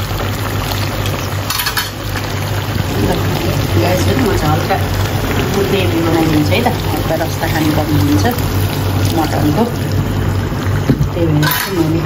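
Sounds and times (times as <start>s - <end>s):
low hum: 2.0s - 12.0s
person speaking: 2.8s - 8.4s.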